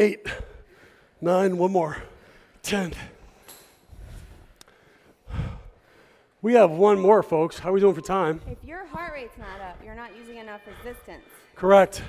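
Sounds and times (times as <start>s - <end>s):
person breathing out heavily: 3.9s - 6.4s.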